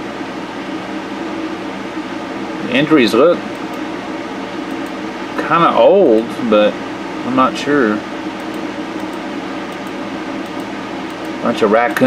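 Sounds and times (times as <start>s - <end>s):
steady hiss with low hum: 0.0s - 12.0s.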